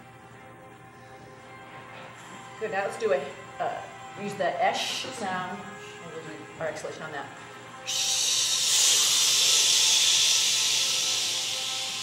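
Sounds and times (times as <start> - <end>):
people exhaling on sh sound: 7.9 - 12.0.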